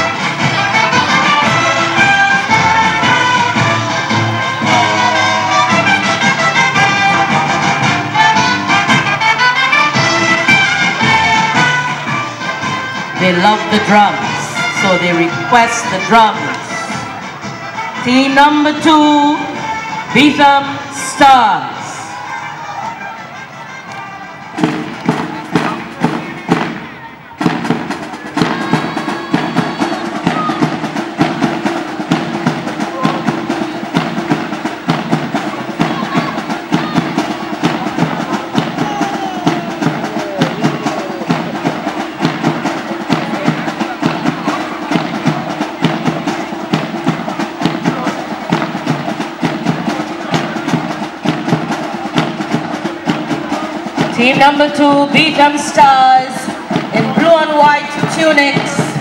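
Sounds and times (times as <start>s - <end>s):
marching drums: 0.0s - 59.0s.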